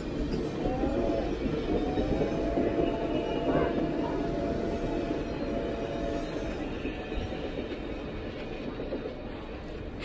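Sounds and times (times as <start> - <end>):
railcar wheels rumbling: 0.0 - 10.0.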